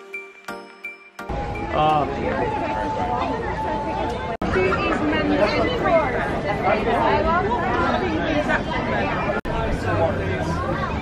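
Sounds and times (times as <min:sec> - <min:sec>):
people chattering: 0:01.3 - 0:11.0.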